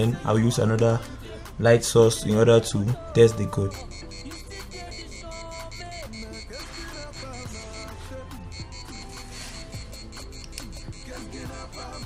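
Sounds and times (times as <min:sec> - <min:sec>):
background music: 0:00.0 - 0:12.0
piezo buzzer beeping rapidly: 0:03.2 - 0:12.0.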